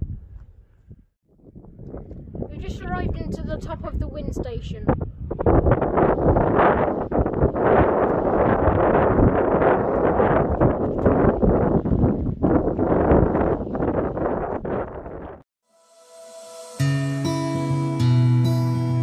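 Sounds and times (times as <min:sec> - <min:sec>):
gusty wind on microphone: 0:00.0 - 0:15.5.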